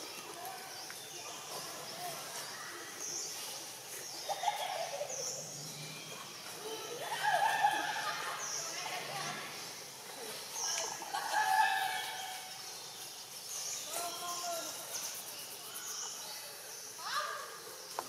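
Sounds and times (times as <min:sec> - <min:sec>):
birds chirping: 0:00.0 - 0:18.0.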